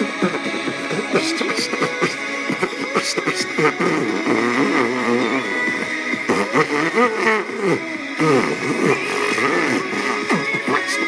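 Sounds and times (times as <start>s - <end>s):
music playing from radio: 0.0s - 11.0s
person beatboxing: 0.0s - 11.0s.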